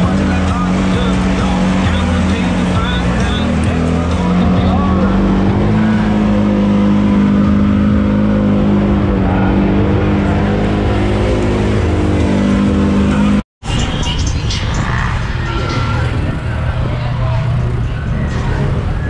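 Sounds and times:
off-road vehicle engine revving: 0.0 - 13.4, 14.0 - 19.0.

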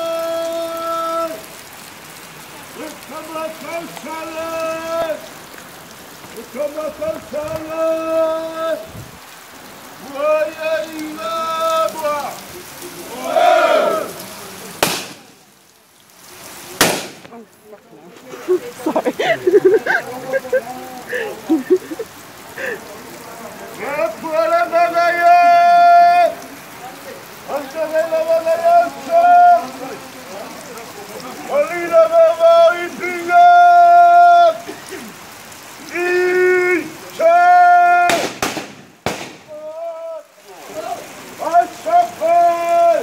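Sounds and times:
rain falling: 0.0 - 43.0
loud gunshot: 14.8 - 15.3, 16.8 - 17.2, 38.1 - 39.6.

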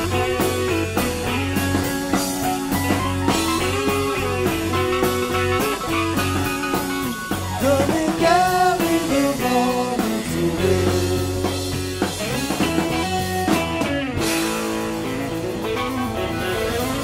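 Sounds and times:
electric guitar melody: 0.0 - 17.0
live rock band playing: 0.0 - 17.0.

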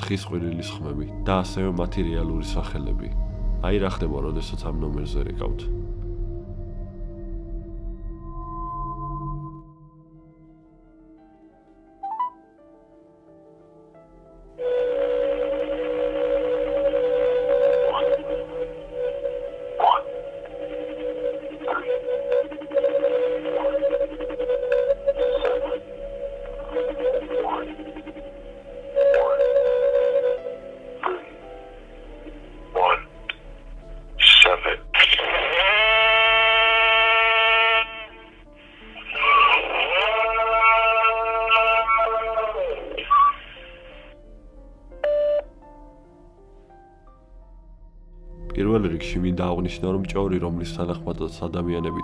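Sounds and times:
wavering electronic tone over phone: 14.6 - 33.5, 35.0 - 44.0.

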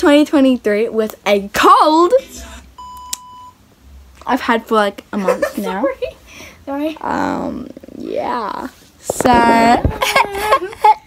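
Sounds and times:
person speaking: 6.8 - 10.5.

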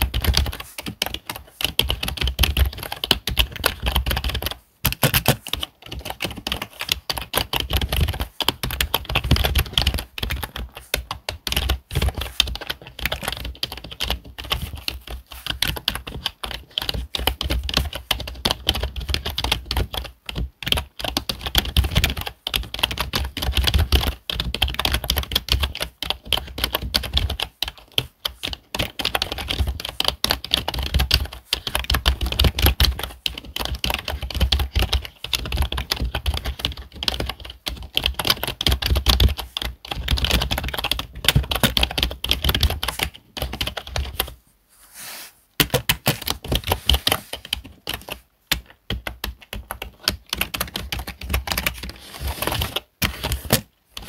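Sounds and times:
fast typing on keyboard: 0.0 - 44.4, 45.6 - 54.0.

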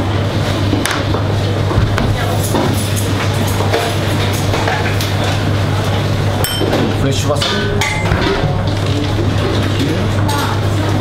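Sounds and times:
steady low hum: 5.5 - 11.0
bright ringing clink: 6.4 - 6.7
dishes and utensils clinking: 6.4 - 8.4.

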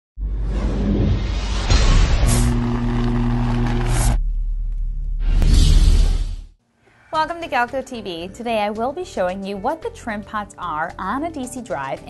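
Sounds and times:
whoosh: 0.2 - 4.4, 5.1 - 6.6.

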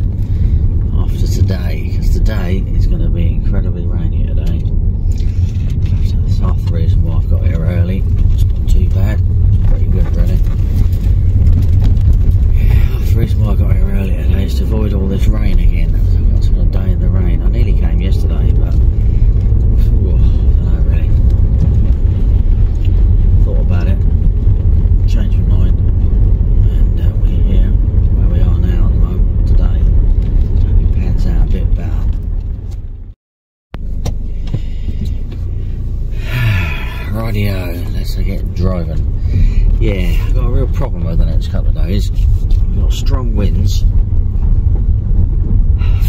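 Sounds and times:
car engine and tyre rumble: 0.0 - 46.0
indistinct voices: 12.4 - 22.1, 36.1 - 43.9.

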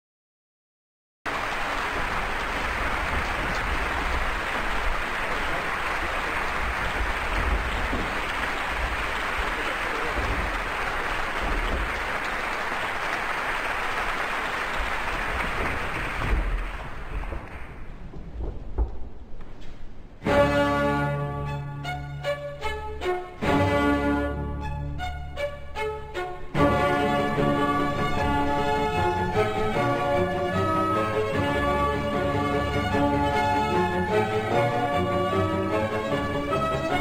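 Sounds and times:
audience applauding: 1.3 - 18.0, 26.6 - 37.0.

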